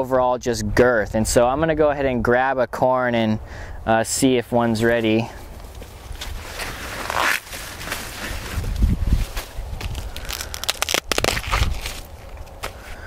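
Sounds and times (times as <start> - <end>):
corn leaves rustling and crackling: 4.8 - 13.0
sharp cracks: 9.4 - 12.8.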